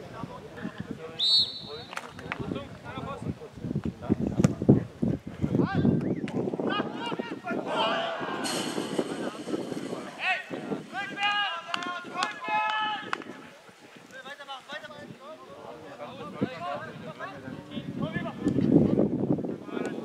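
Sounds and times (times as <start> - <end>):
men shouting: 6.8 - 8.5
sharp thud: 8.4 - 10.4.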